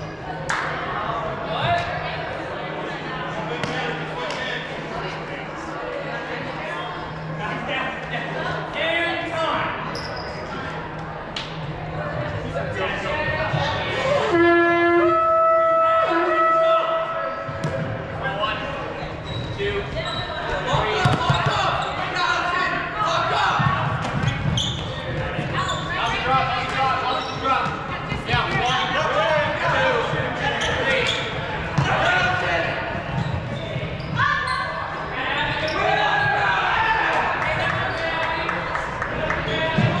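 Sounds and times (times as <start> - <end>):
players calling out: 13.6 - 17.4.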